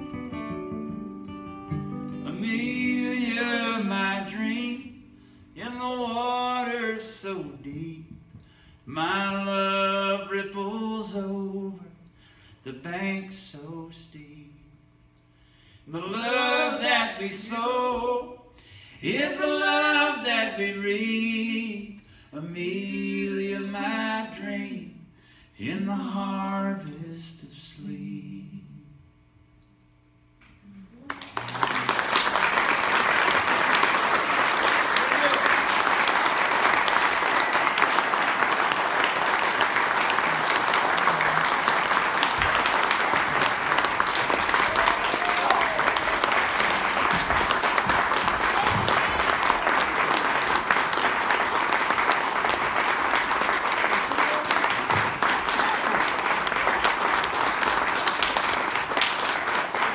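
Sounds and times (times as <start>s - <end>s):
audience applauding: 31.0s - 59.9s.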